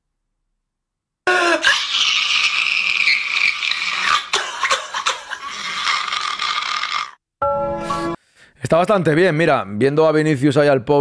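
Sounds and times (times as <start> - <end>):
high voice-like cry: 1.3 - 7.2.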